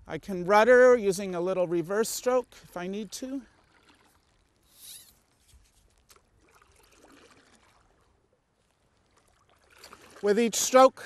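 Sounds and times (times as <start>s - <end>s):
paddle swishing through water: 2.6s - 11.0s.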